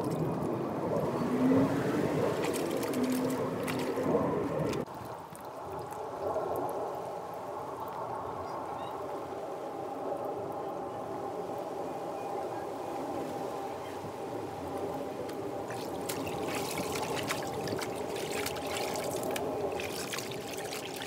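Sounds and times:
water trickling: 0.0s - 7.0s, 15.3s - 21.0s
water splashing and dripping: 0.0s - 8.0s, 15.2s - 21.0s
clothes wrung by hand: 15.7s - 21.0s.

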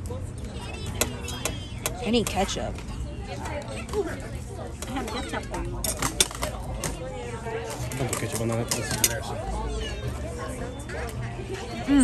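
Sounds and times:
indistinct voices and chatter: 0.0s - 12.0s.

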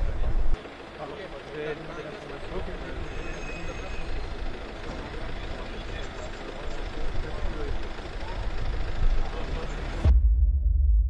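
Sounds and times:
indistinct voices talking: 0.0s - 10.1s
low engine rumble: 0.0s - 11.0s.

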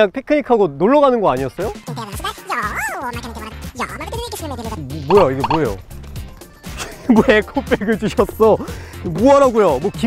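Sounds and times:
background music with bass line: 5.1s - 5.8s
man speaking: 5.1s - 5.8s.

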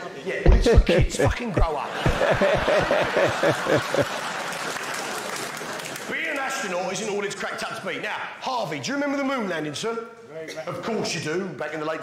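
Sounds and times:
audience applauding: 2.0s - 6.9s.

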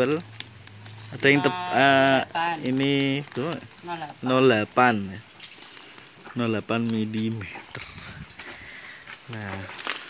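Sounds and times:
plastic sheet rustling and crinkling: 0.0s - 10.0s.

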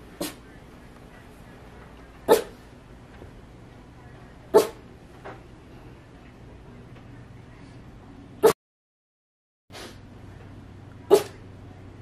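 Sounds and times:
dog barking: 2.3s - 2.6s, 4.5s - 4.8s, 11.1s - 11.4s.

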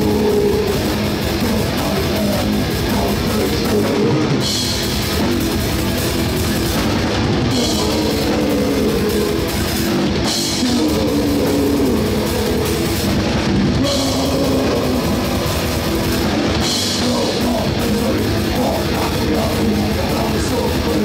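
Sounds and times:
distorted electric guitar riff: 0.0s - 21.0s
drum kit: 0.0s - 21.0s.

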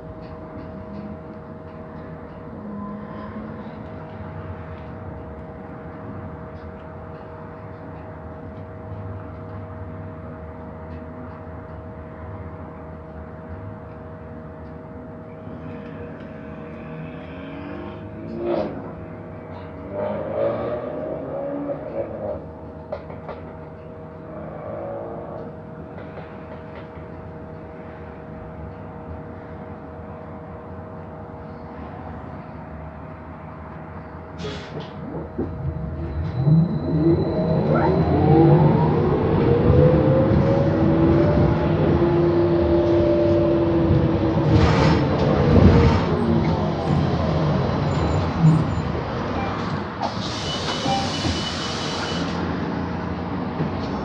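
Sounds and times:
bus engine idling hum: 21.9s - 54.0s.

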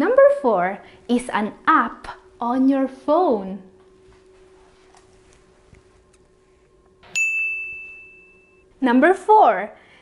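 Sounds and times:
faint low hum: 0.0s - 10.0s
bright ding: 7.0s - 8.7s.

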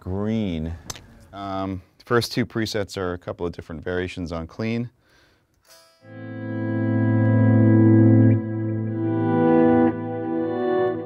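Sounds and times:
clean electric guitar chords: 6.0s - 11.0s.

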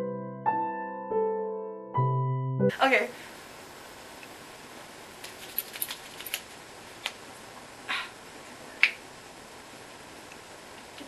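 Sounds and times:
finger snap: 8.8s - 9.0s.

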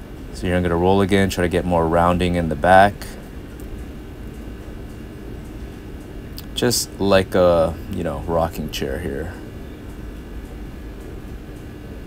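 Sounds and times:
low background hum and hiss: 0.0s - 12.0s.

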